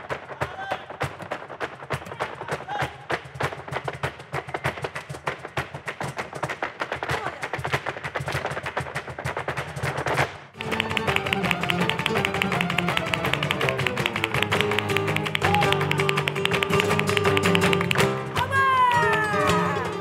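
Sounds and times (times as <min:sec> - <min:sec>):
flamenco music: 0:00.0 - 0:20.0
rapid percussive taps: 0:00.0 - 0:20.0.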